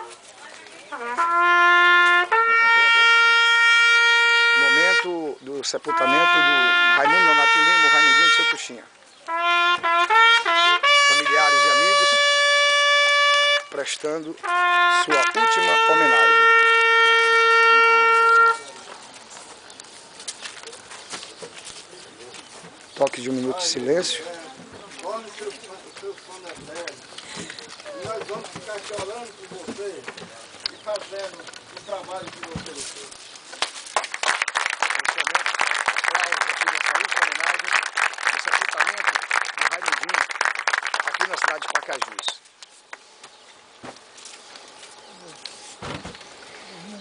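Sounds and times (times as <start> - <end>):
faint outdoor crowd ambience: 0.0 - 47.0
brass horn playing long notes: 0.9 - 18.9.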